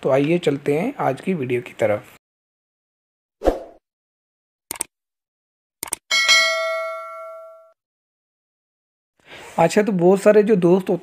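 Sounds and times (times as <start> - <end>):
bell ding: 6.1 - 7.8.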